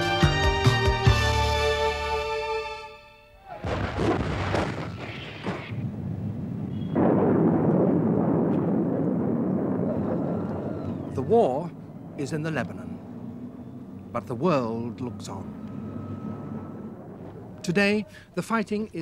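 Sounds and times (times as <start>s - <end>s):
orchestral theme music: 0.0s - 3.3s
loud explosion blasts: 3.6s - 11.4s.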